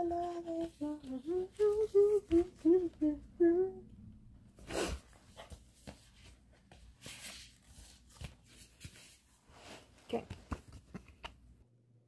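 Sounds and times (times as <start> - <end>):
cardboard and paper rustling: 5.1 - 11.0.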